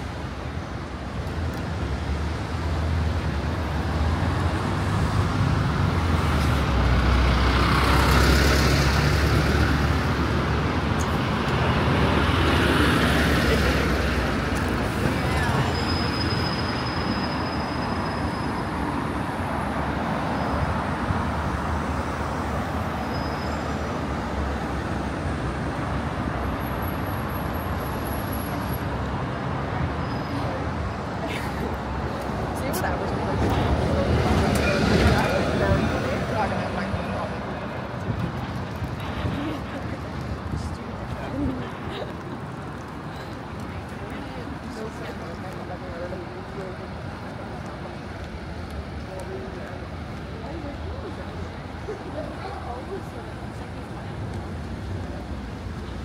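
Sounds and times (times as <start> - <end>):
road traffic passing: 0.0 - 56.0
vehicles going past: 0.0 - 56.0.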